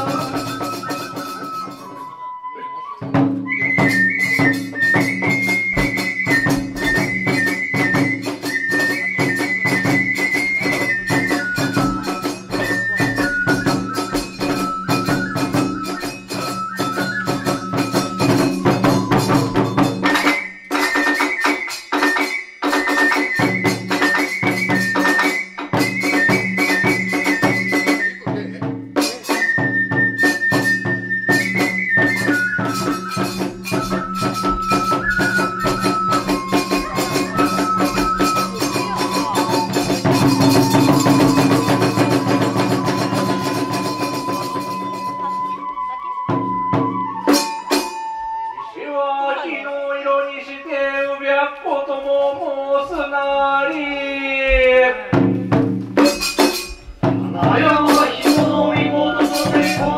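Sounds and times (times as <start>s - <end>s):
drum beats: 0.0s - 48.6s, 52.4s - 59.9s
rapid hand-cymbal beats: 0.0s - 48.6s, 54.5s - 59.9s
bamboo flute melody: 0.0s - 59.9s.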